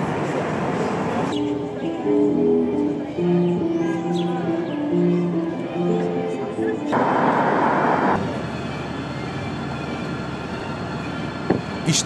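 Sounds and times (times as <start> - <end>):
city street traffic: 0.0 - 12.0.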